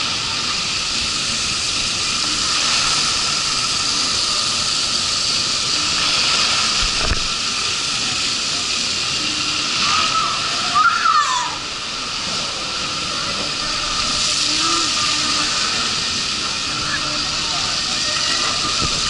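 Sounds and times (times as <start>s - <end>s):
rushing water: 0.0s - 19.0s.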